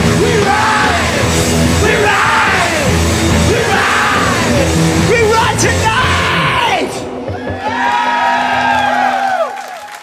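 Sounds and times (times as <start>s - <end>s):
rock band playing: 0.0s - 9.3s.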